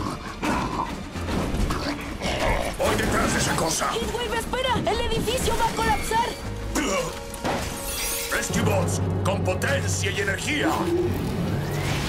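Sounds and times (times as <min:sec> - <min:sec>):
action background score: 0:00.0 - 0:12.0.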